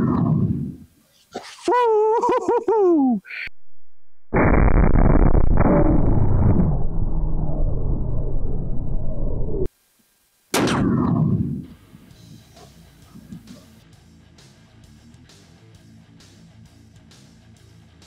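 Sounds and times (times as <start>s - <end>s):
people laughing: 1.4s - 3.2s.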